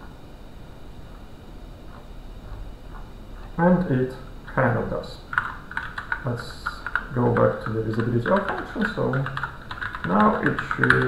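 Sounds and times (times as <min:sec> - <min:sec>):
person speaking: 0:02.4 - 0:11.0
keyboard typing: 0:04.8 - 0:11.0.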